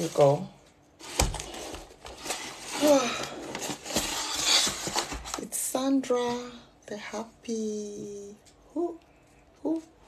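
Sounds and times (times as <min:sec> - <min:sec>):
packaging rustling: 0:00.0 - 0:05.4.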